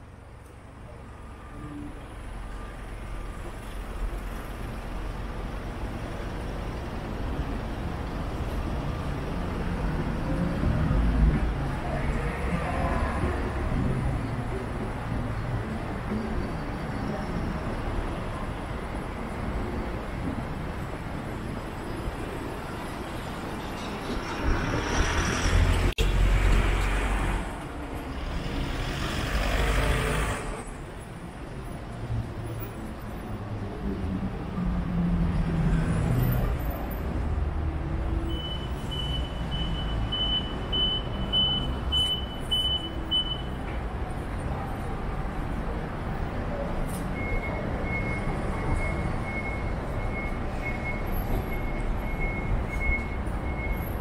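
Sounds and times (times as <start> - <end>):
road traffic rumble: 0.0 - 54.0
loud vehicles passing: 4.1 - 43.1.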